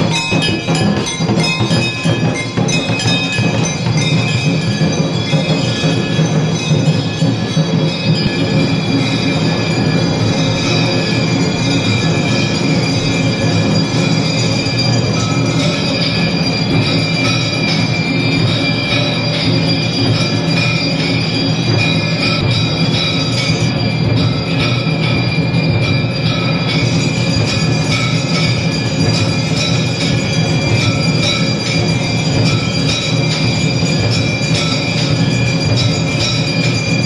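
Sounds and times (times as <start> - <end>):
temple bells and gongs clanging: 0.0 - 37.0.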